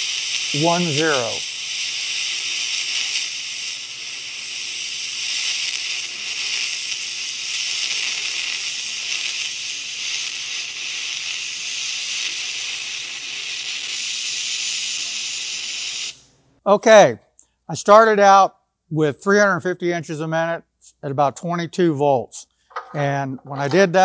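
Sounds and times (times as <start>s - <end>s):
welding arc hissing: 0.0s - 16.3s.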